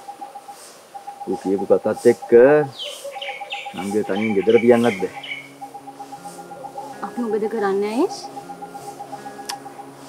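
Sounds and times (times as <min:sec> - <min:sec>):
birds chirping: 0:00.0 - 0:10.0
faint low drone: 0:03.4 - 0:10.0
person speaking: 0:03.7 - 0:05.2.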